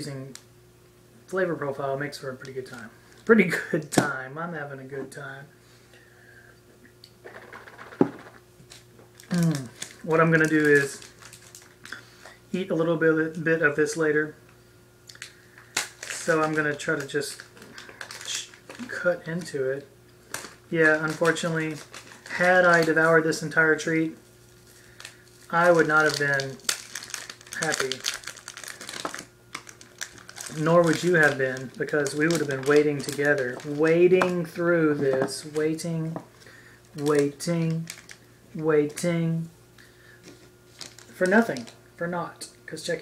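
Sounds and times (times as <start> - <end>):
low steady hum: 0.0 - 43.0
candy wrapper crackling: 7.2 - 12.0, 15.1 - 39.0, 39.8 - 41.8.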